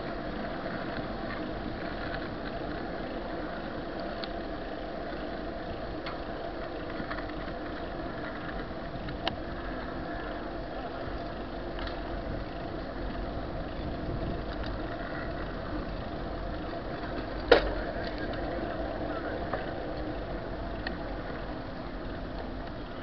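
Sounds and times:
bicycle rolling and rattling: 0.0 - 23.0.

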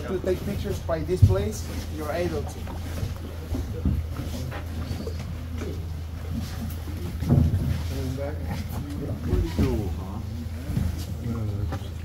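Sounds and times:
boat motor droning: 0.0 - 12.0.

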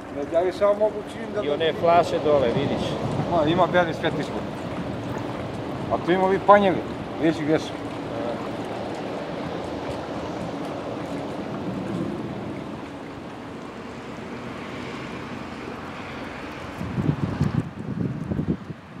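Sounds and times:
wind buffeting microphone: 0.0 - 14.7, 15.4 - 19.0
river flowing fast: 0.0 - 18.1.

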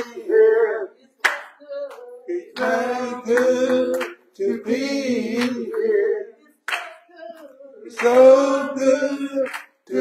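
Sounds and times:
congregation singing: 0.0 - 10.0
sharp clap: 1.2 - 2.0, 5.3 - 5.8, 6.7 - 7.0, 8.0 - 8.4, 9.4 - 9.8.

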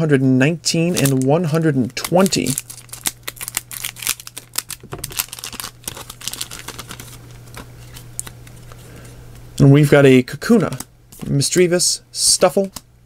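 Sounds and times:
cards rustling: 0.8 - 9.2
foil wrapper crinkling and tearing: 0.9 - 8.4.

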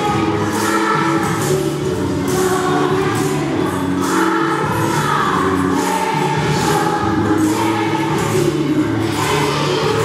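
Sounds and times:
children singing a carol: 0.0 - 10.0.

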